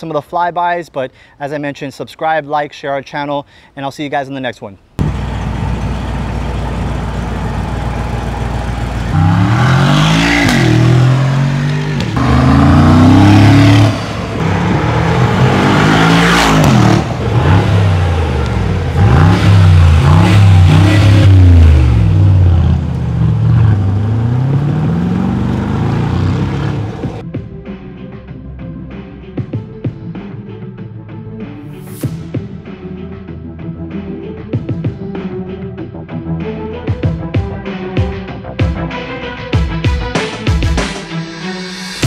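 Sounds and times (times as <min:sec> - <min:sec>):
car engine idling and revving: 0:05.0 - 0:27.2.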